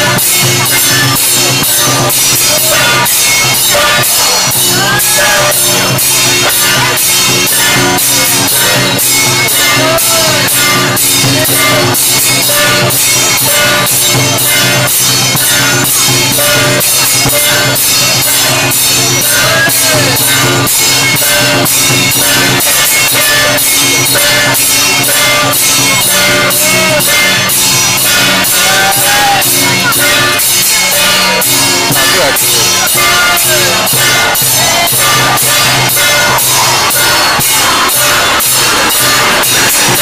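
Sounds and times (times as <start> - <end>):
fast ritual percussion beat: 0.0 - 40.0
sustained ringing tones: 0.0 - 40.0.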